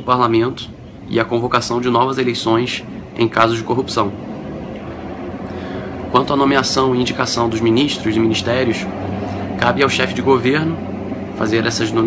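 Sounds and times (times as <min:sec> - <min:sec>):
low rumble with hiss: 0:00.0 - 0:12.0.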